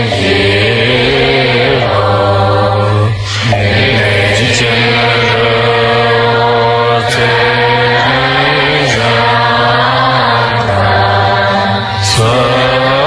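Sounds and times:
low drone: 0.0s - 13.0s
slow prayer chanting: 0.0s - 13.0s.

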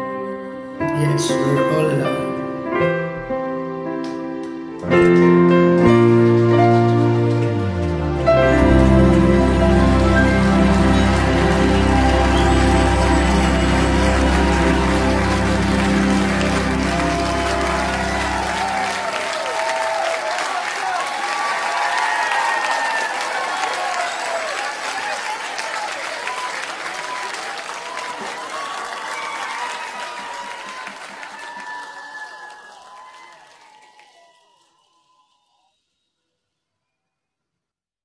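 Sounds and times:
backing music chord: 0.8s - 19.4s
audience applause and cheers: 3.8s - 35.7s.

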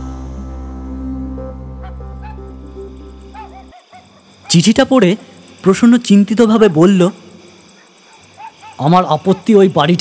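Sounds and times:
man narrating: 4.5s - 7.2s, 8.8s - 10.0s.

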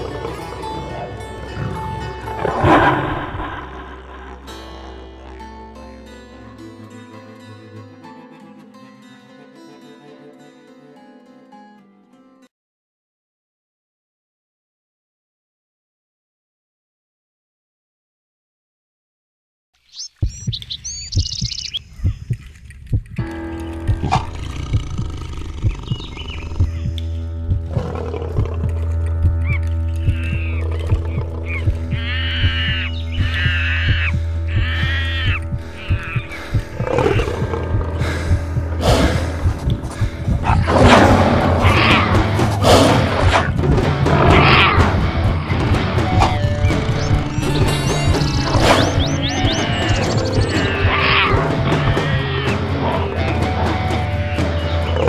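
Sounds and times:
big cat roaring: 0.0s - 5.4s, 24.0s - 26.6s, 27.6s - 32.9s, 35.7s - 47.0s, 49.7s - 54.1s
background music: 0.0s - 12.5s, 23.2s - 55.0s
high bird-like chirps: 19.8s - 22.6s, 25.6s - 27.1s, 31.4s - 36.4s, 46.2s - 51.0s.

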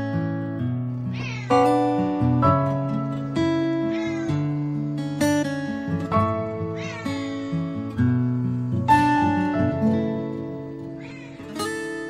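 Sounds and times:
plucked guitar music: 0.0s - 12.0s
kittens meowing: 1.1s - 1.9s, 3.0s - 4.6s, 6.6s - 7.6s, 10.8s - 11.7s.

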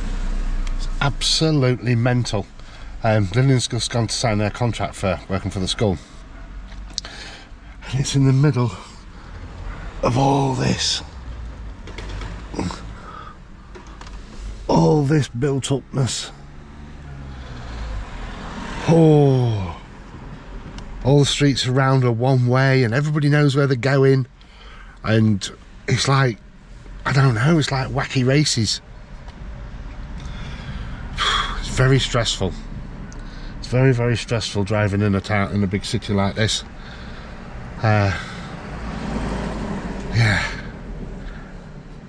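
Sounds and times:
low rumble in car cabin: 0.0s - 11.8s
man's sharp breath: 7.0s - 7.8s, 12.8s - 13.5s, 24.4s - 25.0s, 30.2s - 31.6s, 36.7s - 37.6s.

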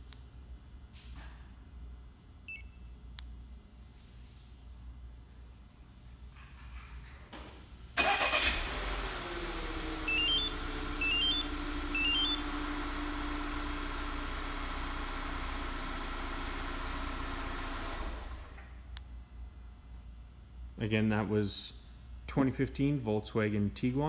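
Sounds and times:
car engine cranking and idling: 8.0s - 18.6s.

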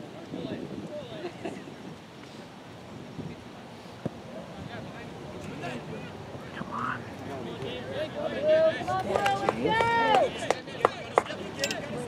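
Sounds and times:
faint outdoor voices: 0.0s - 12.0s.

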